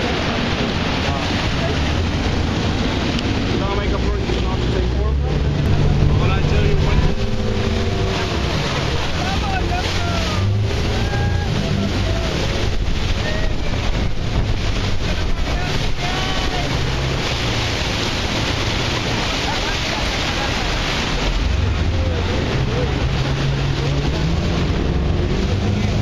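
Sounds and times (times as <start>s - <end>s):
passengers calling: 0.0s - 26.0s
speedboat engine: 0.0s - 26.0s
water rushing: 0.0s - 26.0s
wind buffeting microphone: 0.0s - 26.0s.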